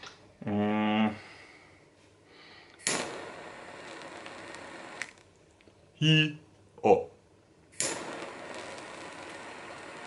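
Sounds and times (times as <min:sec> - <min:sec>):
lighter click: 0:02.7 - 0:05.2, 0:07.8 - 0:10.0
jet flame hissing: 0:02.8 - 0:05.2, 0:07.7 - 0:10.0.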